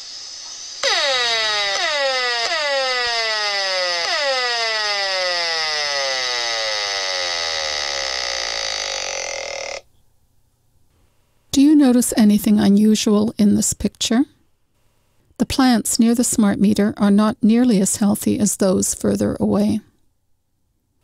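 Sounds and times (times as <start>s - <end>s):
loud tone sliding down in pitch: 0.8s - 9.8s.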